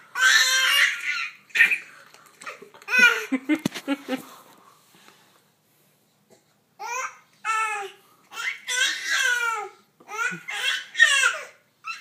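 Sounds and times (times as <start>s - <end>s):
baby yelling: 0.0s - 1.8s, 6.8s - 12.0s.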